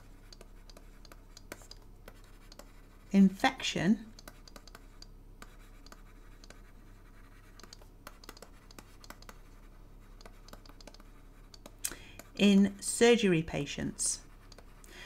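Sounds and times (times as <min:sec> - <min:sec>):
stylus scratching on tablet: 0:00.0 - 0:14.8
faint low hum: 0:00.0 - 0:15.0.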